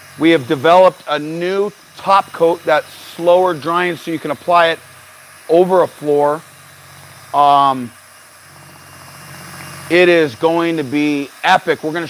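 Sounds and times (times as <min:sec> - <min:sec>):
drill motor hum: 0:00.0 - 0:12.0.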